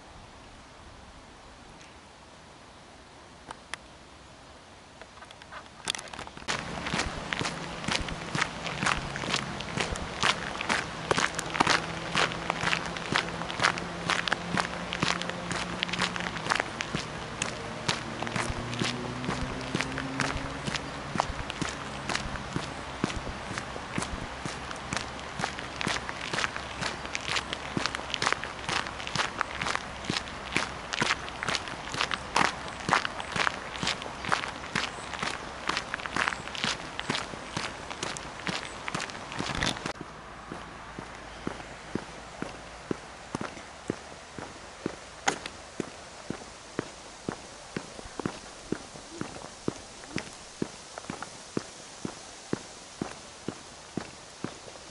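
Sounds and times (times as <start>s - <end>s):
footsteps crunching on gravel: 5.1s - 54.9s.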